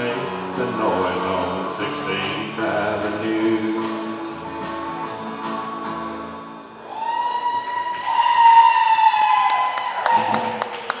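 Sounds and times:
people clapping: 7.4s - 11.0s.

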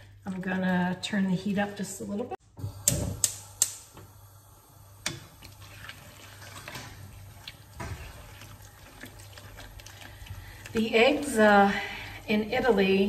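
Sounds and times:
spatula scraping frying pan: 5.0s - 12.4s.

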